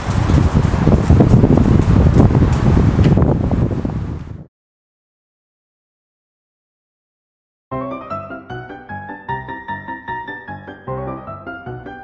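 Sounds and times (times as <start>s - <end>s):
wind buffeting microphone: 0.0s - 4.5s.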